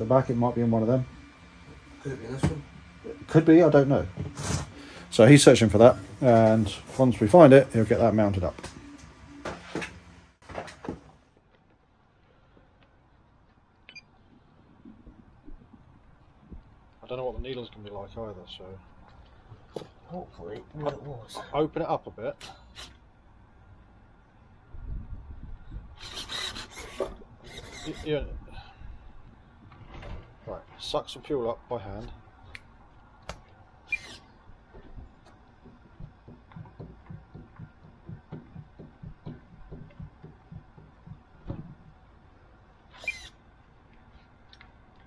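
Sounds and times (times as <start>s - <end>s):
high squeak: 26.0s - 28.1s, 33.9s - 34.2s, 43.0s - 43.3s.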